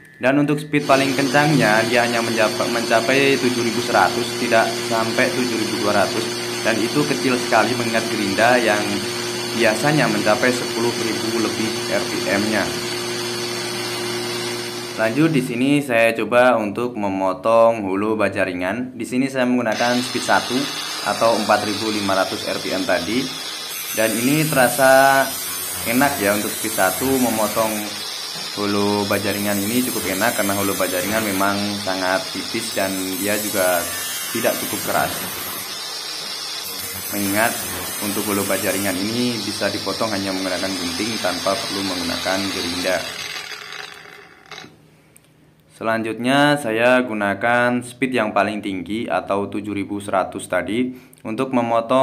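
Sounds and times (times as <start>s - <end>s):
angle grinder motor hum: 0.8s - 15.4s, 19.7s - 44.8s.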